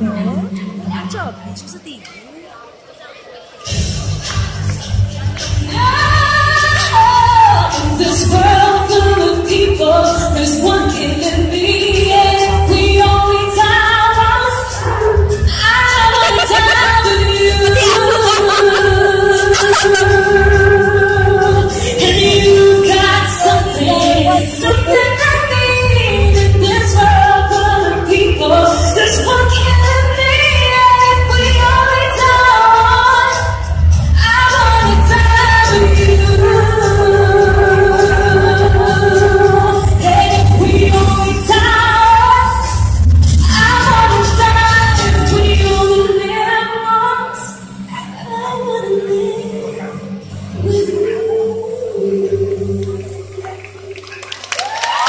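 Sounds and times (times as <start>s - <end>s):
amplified backing music with bass: 3.7s - 54.0s
woman singing into a microphone: 5.5s - 53.9s
band playing: 16.0s - 26.2s
audience clapping and cheering: 52.8s - 55.0s.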